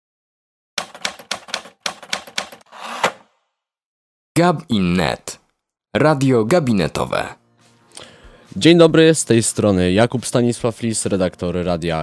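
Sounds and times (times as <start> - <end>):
sharp typing-like clicks: 0.8 - 2.7.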